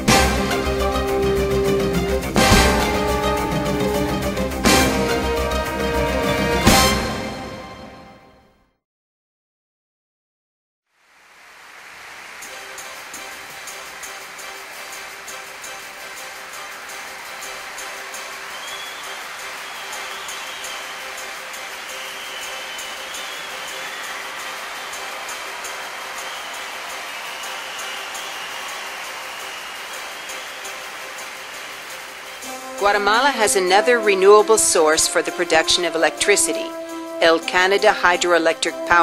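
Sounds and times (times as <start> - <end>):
background music with held tones: 0.0 - 8.5, 12.4 - 39.0.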